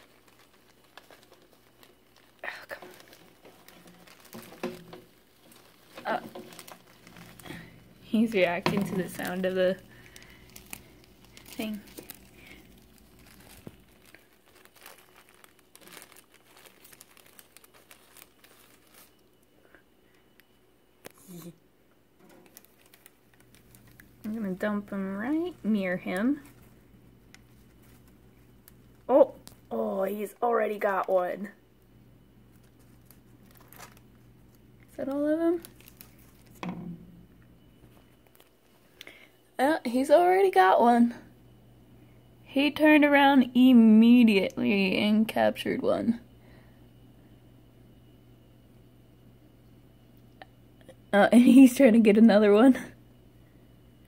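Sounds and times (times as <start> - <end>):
faint crinkling and crackles: 0.0 - 54.0
faint low hum: 0.0 - 54.0.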